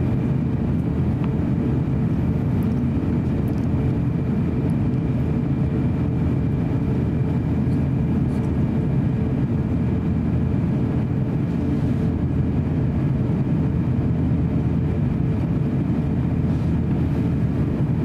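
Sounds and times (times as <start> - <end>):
airliner cabin engine roar: 0.0 - 18.0
faint steady whine: 0.0 - 18.0.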